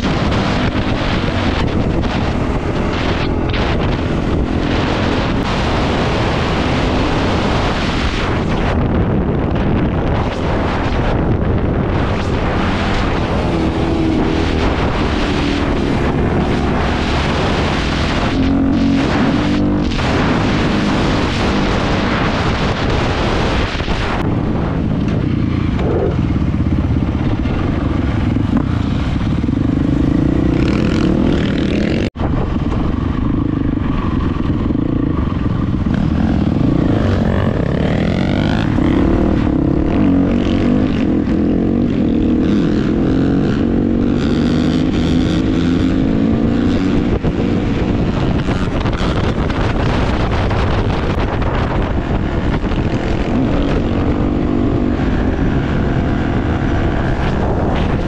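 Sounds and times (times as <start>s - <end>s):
dirt bike engine revving: 0.0s - 24.7s, 25.4s - 32.2s, 33.2s - 58.0s.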